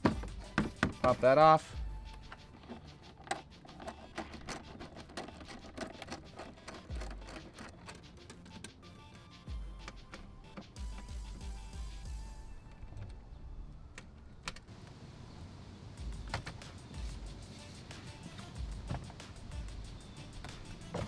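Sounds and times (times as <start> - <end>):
background music: 0.0 - 14.5, 16.0 - 21.0
plastic and metal clicking: 2.1 - 8.9.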